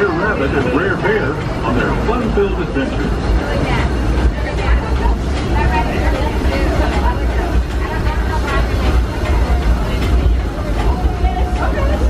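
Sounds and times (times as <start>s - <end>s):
people talking: 0.0s - 12.0s
train car rumbling on track: 0.0s - 12.0s.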